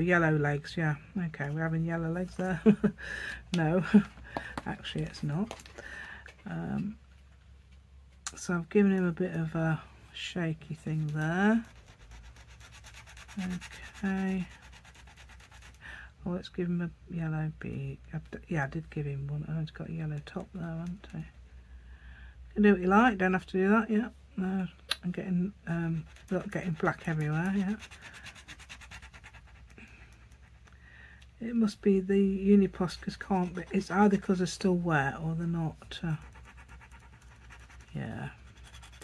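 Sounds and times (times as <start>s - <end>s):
paint marker scrubbing on paper: 10.9s - 15.8s, 25.9s - 30.7s, 32.6s - 39.0s.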